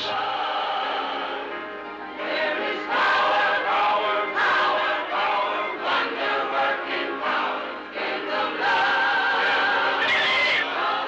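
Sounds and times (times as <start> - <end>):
choir singing: 0.0 - 11.0.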